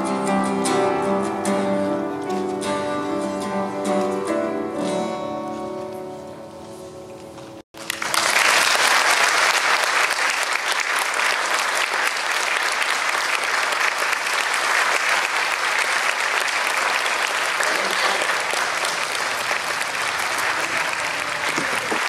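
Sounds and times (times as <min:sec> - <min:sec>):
audience applauding: 0:07.8 - 0:22.0.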